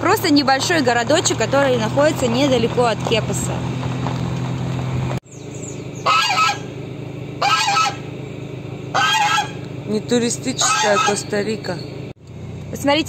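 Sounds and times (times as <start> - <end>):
car engine hum: 0.0 - 13.0
goose honking: 6.0 - 6.7, 7.4 - 8.1, 8.9 - 9.7, 10.5 - 11.4.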